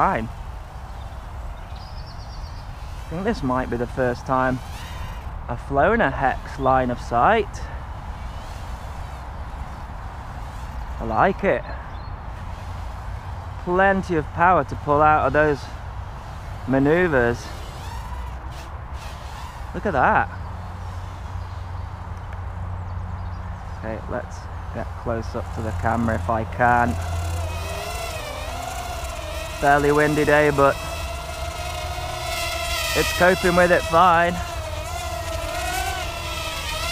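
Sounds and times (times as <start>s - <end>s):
drone motors whining: 0.0s - 21.8s, 24.0s - 36.9s.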